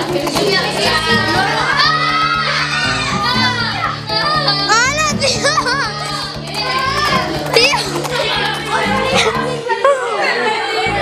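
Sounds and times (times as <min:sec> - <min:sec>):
background music: 0:00.0 - 0:11.0
children calling and chattering: 0:00.0 - 0:11.0.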